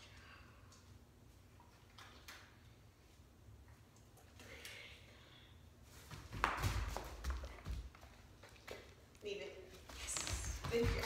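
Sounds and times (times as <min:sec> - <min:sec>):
woman's voice: 0:09.2 - 0:11.0.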